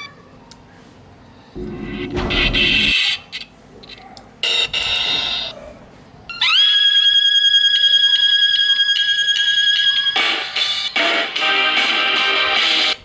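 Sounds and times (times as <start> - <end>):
high electronic tone: 1.6 - 3.1
music from small speaker: 7.6 - 13.0.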